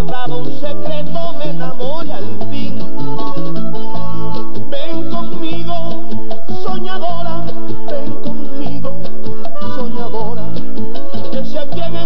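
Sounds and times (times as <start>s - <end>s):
bass guitar: 0.0s - 12.0s
button accordion melody: 0.0s - 12.0s
conga drums: 0.0s - 12.0s.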